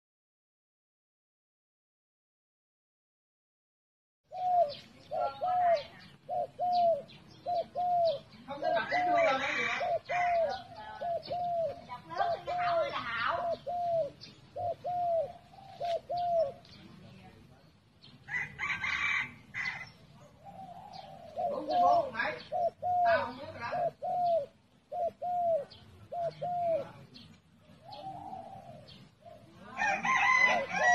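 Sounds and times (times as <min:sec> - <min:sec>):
dove cooing: 0:04.3 - 0:17.2, 0:18.3 - 0:30.9.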